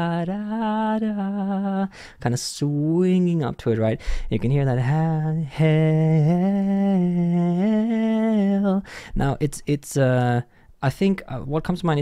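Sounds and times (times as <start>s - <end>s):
man singing a cappella: 0.0s - 10.5s.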